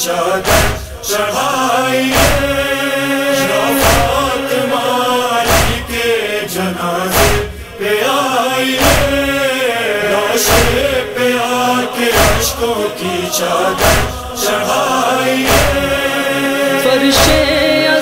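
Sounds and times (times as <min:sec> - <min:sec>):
men chanting a melody: 0:00.0 - 0:18.0
heavy rhythmic thumps: 0:00.3 - 0:04.6, 0:05.3 - 0:06.3, 0:07.0 - 0:08.0, 0:08.6 - 0:11.4, 0:12.0 - 0:16.3, 0:17.0 - 0:17.8.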